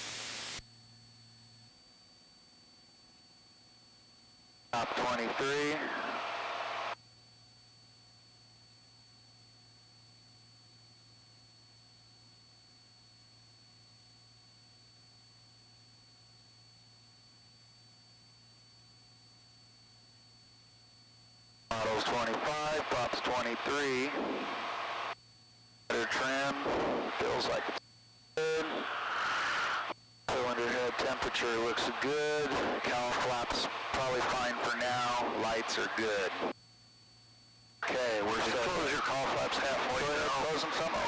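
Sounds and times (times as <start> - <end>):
radio static hiss: 0.0 - 0.6, 4.7 - 7.0, 21.7 - 25.2, 25.9 - 27.8, 28.4 - 36.6, 37.8 - 41.0
thin high whine: 0.0 - 7.2, 14.5 - 41.0
faint steady hum: 0.1 - 41.0
voice on intercom: 4.8 - 6.2, 21.7 - 24.4, 25.9 - 27.8, 30.3 - 36.5, 37.8 - 41.0.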